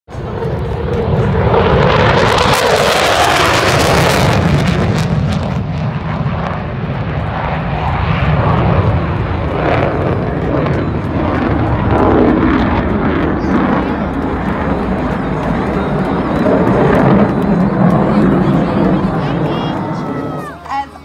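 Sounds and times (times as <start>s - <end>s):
jet engine roar: 0.1s - 21.0s.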